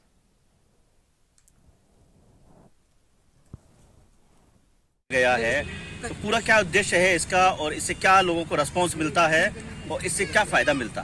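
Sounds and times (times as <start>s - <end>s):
faint clicks: 1.3s - 1.6s.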